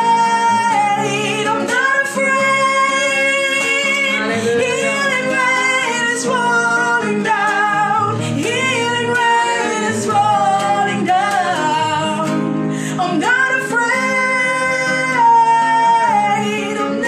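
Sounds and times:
nylon-string guitar: 0.0 - 17.0
woman singing worship song: 0.0 - 17.0.

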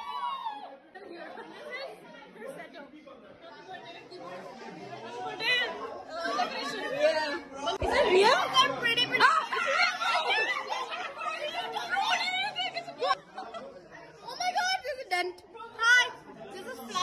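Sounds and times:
people chattering: 0.0 - 17.0.

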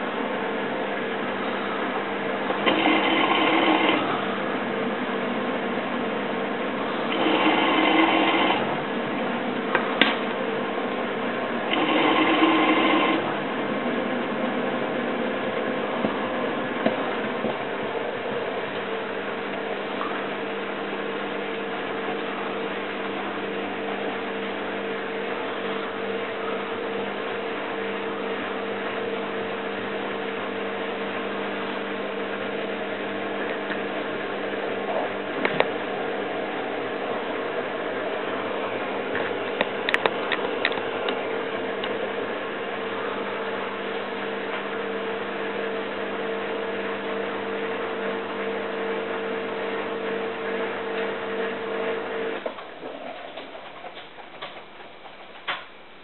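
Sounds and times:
noisy surges: 0.0 - 56.0
washer dryer motor hum: 0.0 - 56.0.

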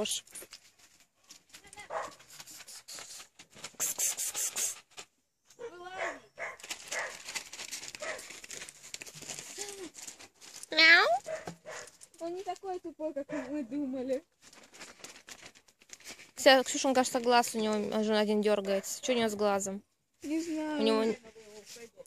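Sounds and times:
rustling through garden plants: 0.0 - 22.0.

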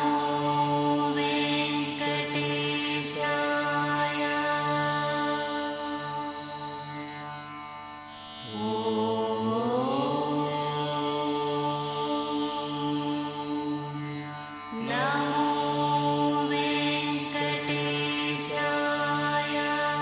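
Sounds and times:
devotional melodic music over drone: 0.0 - 20.0.

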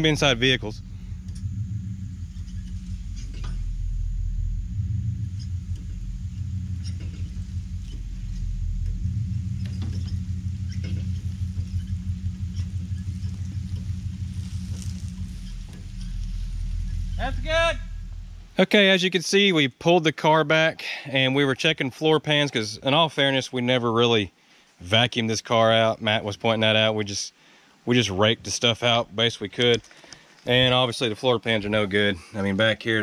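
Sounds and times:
person speaking: 0.0 - 0.8, 17.2 - 18.0
truck engine rumbling at low revs: 0.0 - 18.6.

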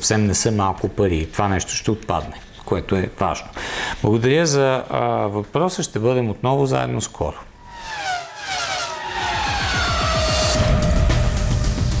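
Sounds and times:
race car engine passing by: 7.6 - 12.0.

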